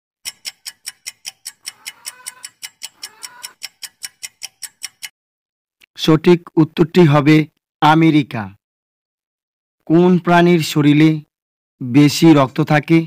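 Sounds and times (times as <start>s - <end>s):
clock ticking: 0.2s - 5.2s.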